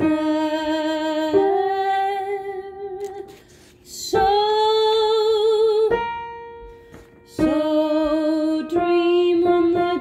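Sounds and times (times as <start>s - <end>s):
woman singing soprano: 0.0s - 6.1s, 7.3s - 10.0s
singer breathing: 3.3s - 3.9s.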